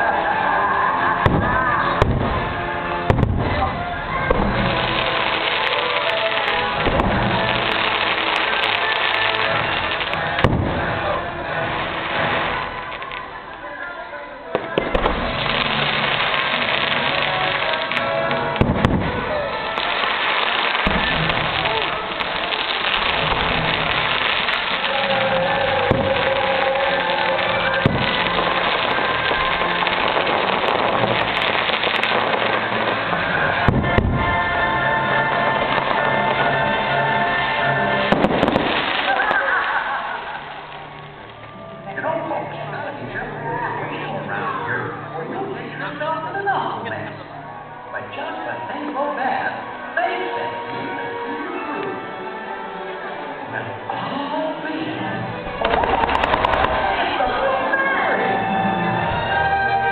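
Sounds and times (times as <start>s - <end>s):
fireworks bursting: 0.0s - 41.9s, 55.2s - 59.9s
soundtrack music: 0.0s - 46.1s.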